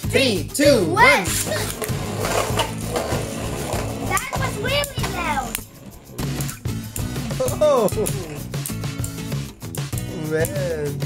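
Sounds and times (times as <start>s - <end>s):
spinning tops whirring and grinding: 1.1s - 10.0s.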